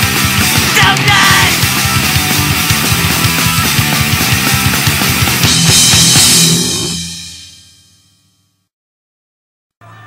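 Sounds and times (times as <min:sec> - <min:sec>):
punk rock band playing: 0:00.0 - 0:07.7
cymbal crash: 0:05.4 - 0:08.2.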